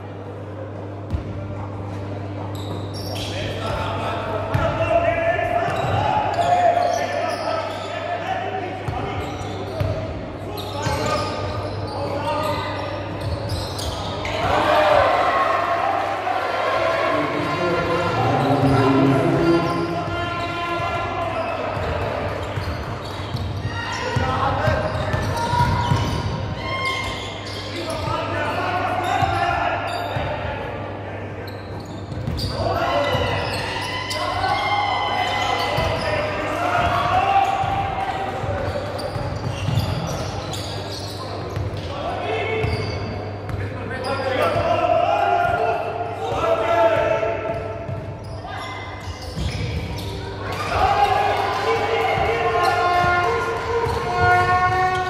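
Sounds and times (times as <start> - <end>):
players and spectators calling out: 2.4 - 55.0.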